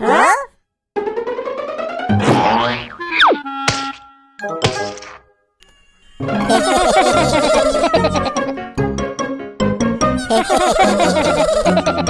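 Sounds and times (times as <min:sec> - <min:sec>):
music: 0:01.0 - 0:12.0.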